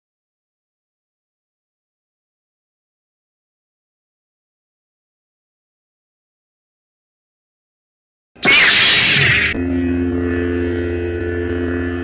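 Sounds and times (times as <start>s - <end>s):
lightsaber electric hum: 8.4s - 12.0s.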